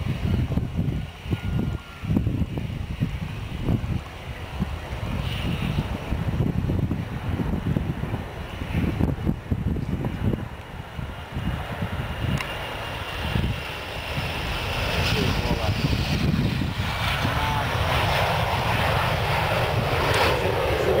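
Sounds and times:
jet engine rumble: 0.0s - 21.0s.

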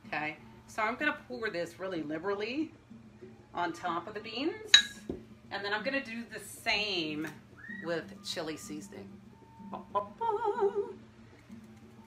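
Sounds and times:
woman singing with vibrato: 9.7s - 11.0s.

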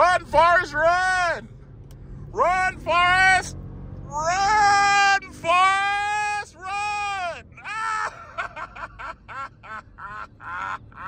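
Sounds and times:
man calling in high held notes: 4.2s - 7.4s.

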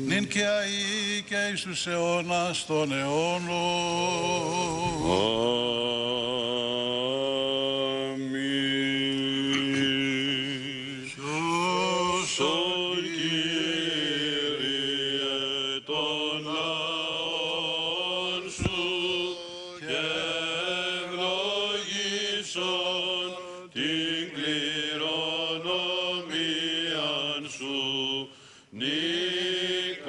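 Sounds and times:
men chanting: 0.0s - 30.0s.

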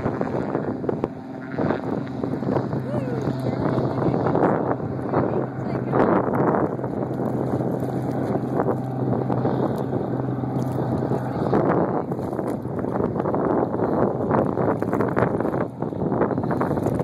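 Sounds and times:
choppy water: 0.0s - 17.0s
low engine hum: 0.0s - 17.0s
wind buffeting microphone: 0.0s - 17.0s.

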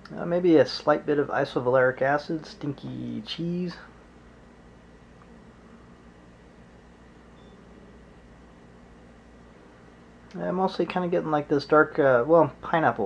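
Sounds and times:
low hum: 0.0s - 13.0s.

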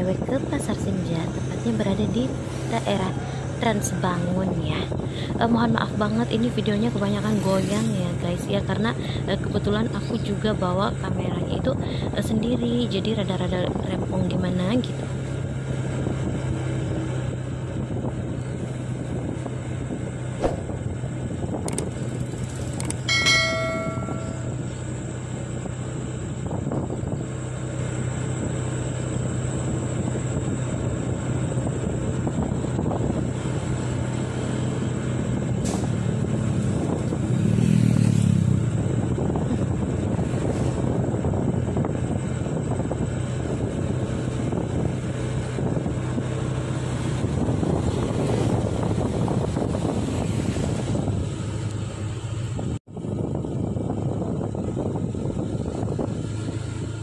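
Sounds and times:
wind rushing over microphone: 15.4s - 24.7s, 30.0s - 51.7s, 52.4s - 57.0s.

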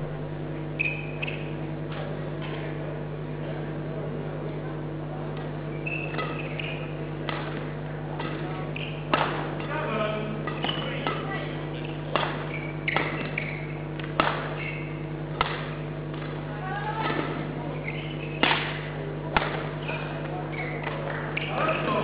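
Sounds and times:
low hall hum: 0.0s - 22.0s
shoes squeaking on court floor: 0.6s - 2.7s, 5.4s - 22.0s
rackets hitting shuttlecock: 5.8s - 21.9s.

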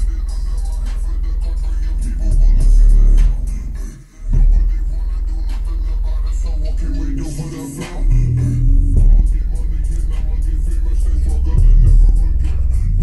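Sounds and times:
bass-heavy music through subwoofer: 0.0s - 13.0s.

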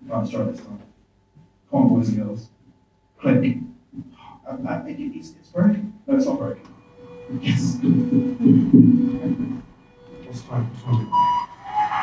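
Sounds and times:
faint steady hum: 0.0s - 12.0s
muffled low throbbing over speakers: 3.4s - 12.0s.

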